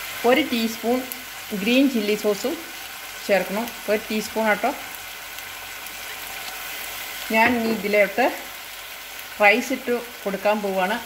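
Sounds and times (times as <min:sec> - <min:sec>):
vegetables sizzling in a wok: 0:00.0 - 0:11.0
person speaking: 0:07.3 - 0:08.3.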